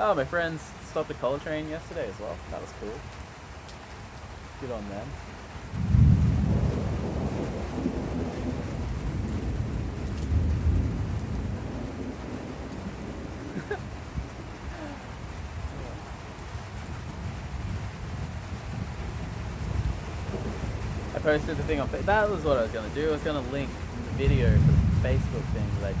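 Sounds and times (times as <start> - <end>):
steady rain: 0.0 - 26.0
thunder rumbling: 4.7 - 26.0.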